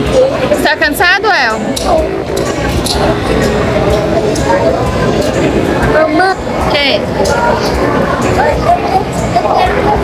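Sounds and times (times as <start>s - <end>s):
crowd chatter with echo: 0.0s - 10.0s.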